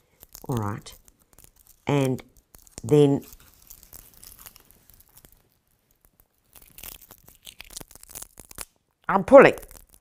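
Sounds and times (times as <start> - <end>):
palm leaf fibres crackling: 0.0 - 10.0.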